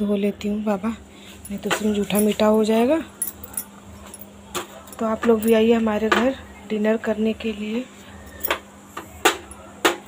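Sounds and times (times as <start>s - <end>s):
faint steady hum: 0.0s - 10.0s
light metallic clinks: 3.2s - 5.7s.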